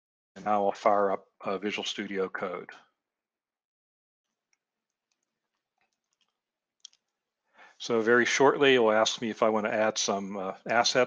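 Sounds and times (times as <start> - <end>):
man speaking: 0.4 - 2.8, 7.8 - 11.0
intake of breath: 7.5 - 7.8.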